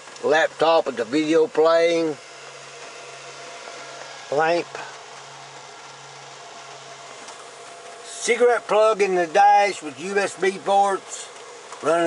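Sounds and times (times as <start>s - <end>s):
faint electrical hum: 0.0s - 12.0s
steady hiss: 0.0s - 12.0s.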